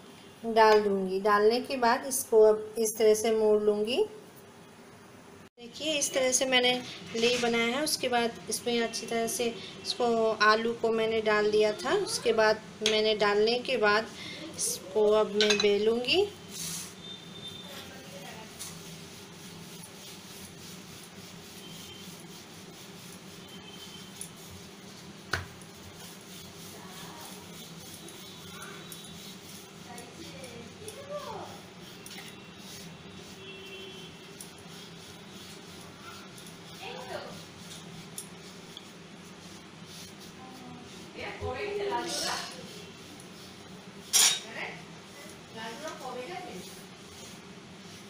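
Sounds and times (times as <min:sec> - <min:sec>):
rolling pin rubbing on dough: 0:05.8 - 0:48.0.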